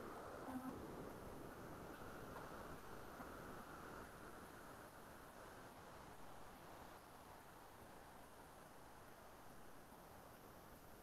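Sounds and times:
microphone hum and hiss: 0.0s - 11.0s.

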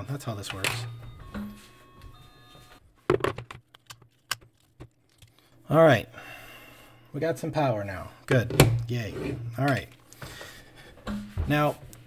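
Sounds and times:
batteries clicking into holder: 3.3s - 5.5s.

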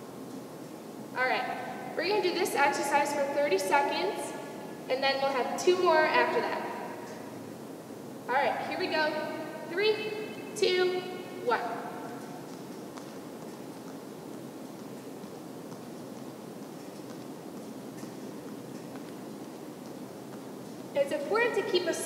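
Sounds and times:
hall background noise: 0.0s - 22.0s.

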